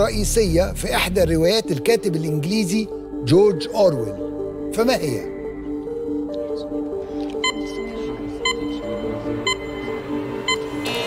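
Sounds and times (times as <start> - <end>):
tense looping music: 0.0 - 11.0.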